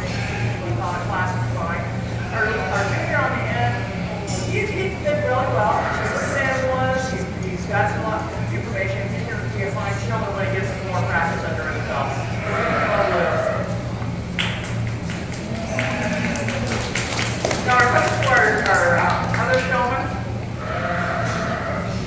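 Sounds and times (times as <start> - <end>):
steady low hum: 0.0 - 22.0
goats bleating: 12.2 - 13.8, 15.5 - 16.6, 20.6 - 22.0.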